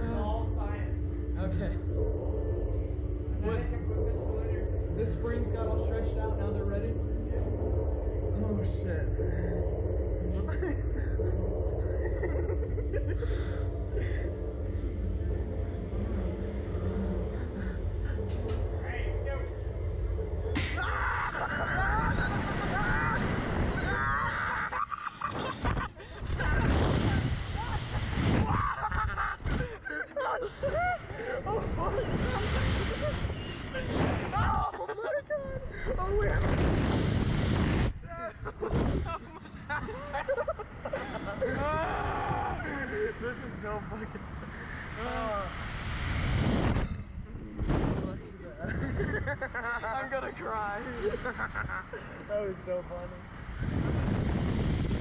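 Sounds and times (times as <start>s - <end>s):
wind rushing over microphone: 0.0s - 55.0s
riders shrieking with laughter: 20.6s - 36.0s, 39.4s - 43.1s.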